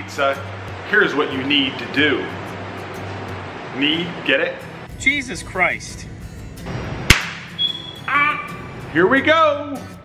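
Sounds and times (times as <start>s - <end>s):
background music: 0.0s - 10.0s
swish into sharp crack: 7.1s - 7.6s.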